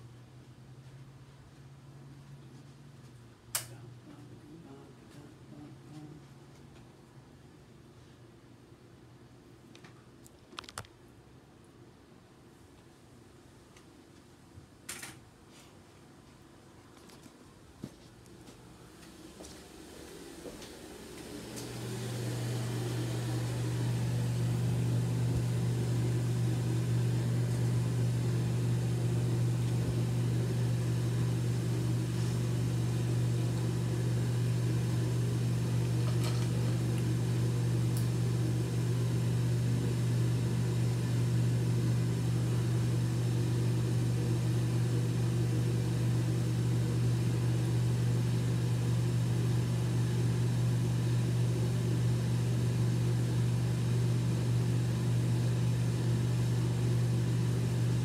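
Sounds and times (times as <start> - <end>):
low electric hum: 0.0 - 58.0.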